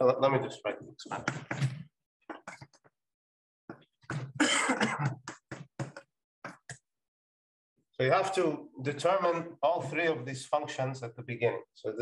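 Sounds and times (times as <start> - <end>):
man coughing: 4.3 - 5.6.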